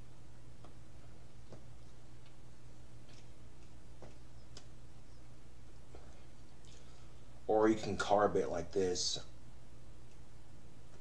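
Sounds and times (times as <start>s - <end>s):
low electrical hum: 0.0s - 11.0s
pipe smoking clicks and lip smacks: 3.0s - 4.8s.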